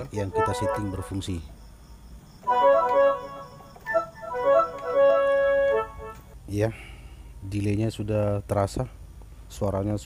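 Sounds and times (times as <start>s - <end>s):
keyboard woodwind melody with echo: 0.2s - 1.3s, 2.5s - 6.2s.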